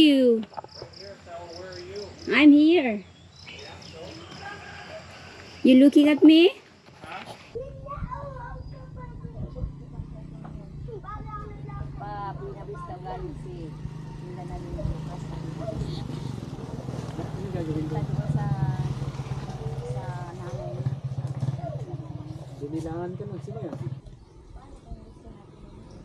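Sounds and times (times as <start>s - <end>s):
people talking indistinctly: 0.0s - 26.0s
low motor hum: 8.4s - 26.0s.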